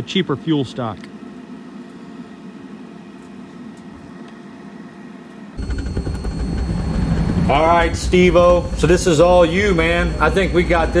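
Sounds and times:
steady machine hum: 0.0 - 11.0
burner roaring: 6.2 - 11.0.

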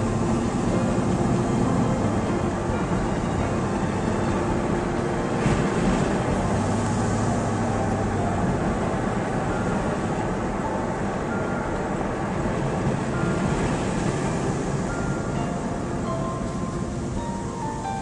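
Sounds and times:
car engine and tyre drone: 0.0 - 18.0.

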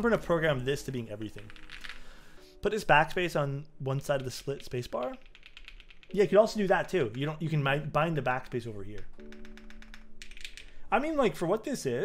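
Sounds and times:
mechanical keyboard typing: 1.4 - 2.0, 4.2 - 7.5, 8.9 - 10.8.

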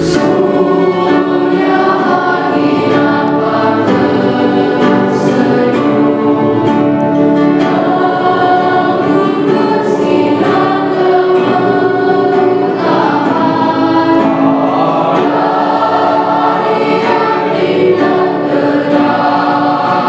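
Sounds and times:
children's choir singing: 0.0 - 20.0.

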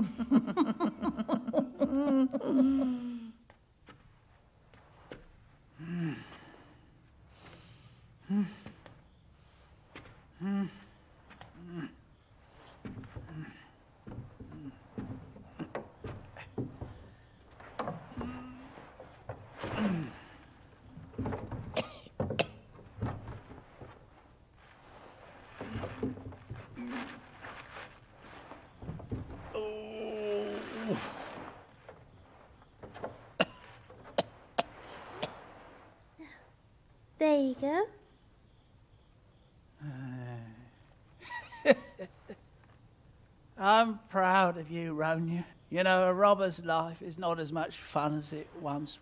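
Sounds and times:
rustling: 3.4 - 36.6
old man grunting and groaning: 5.8 - 6.6, 8.2 - 8.8, 10.3 - 12.1, 13.2 - 13.8, 19.6 - 20.5, 29.4 - 31.5, 39.8 - 40.8
soft knocks: 14.0 - 19.8, 20.6 - 24.2, 28.8 - 29.5.

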